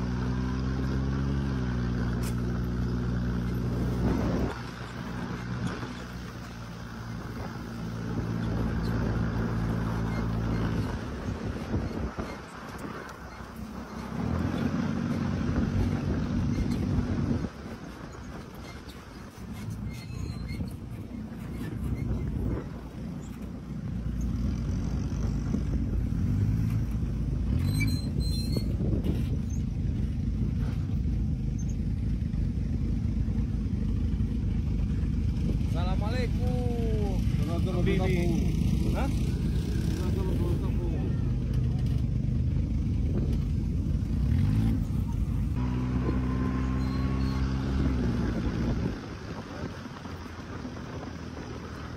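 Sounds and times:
buggy engine running: 0.0s - 51.9s
wind: 0.0s - 51.9s.

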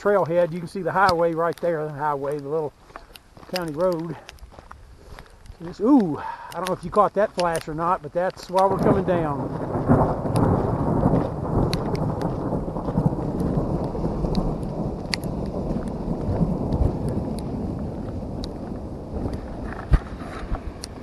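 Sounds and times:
thunder rumbling: 5.6s - 21.0s.

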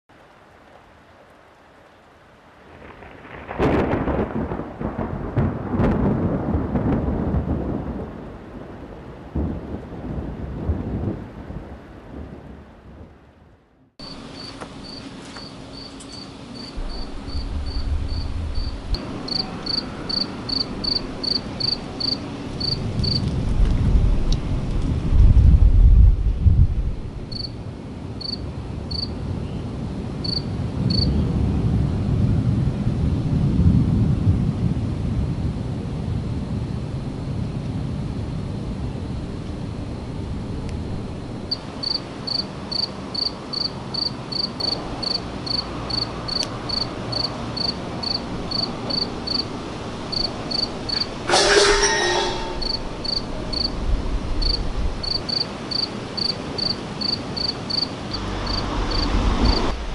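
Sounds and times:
steady rain: 0.1s - 51.6s, 52.6s - 59.9s
thunder rumbling: 2.6s - 59.9s
high chirping: 50.5s - 53.7s.

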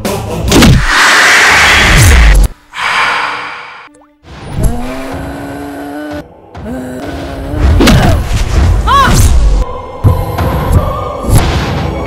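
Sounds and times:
trailer music score: 0.1s - 12.0s
loud rushing whoosh: 0.6s - 3.9s.

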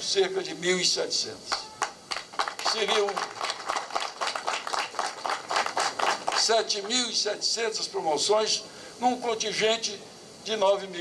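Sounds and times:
crowd applauding: 1.5s - 6.6s.

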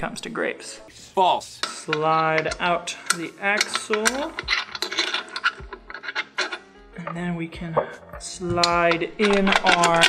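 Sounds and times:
metallic clicks and scraping: 1.6s - 7.2s, 8.2s - 10.0s.

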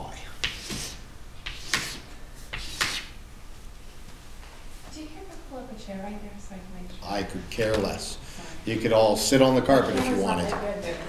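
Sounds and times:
chalk scraping on chalkboard: 0.4s - 3.2s.

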